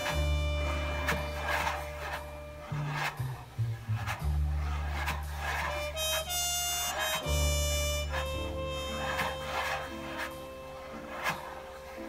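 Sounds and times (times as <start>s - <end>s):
brushes swishing across canvas: 0.0s - 12.0s
jazz recording with bass and horn: 0.0s - 12.0s.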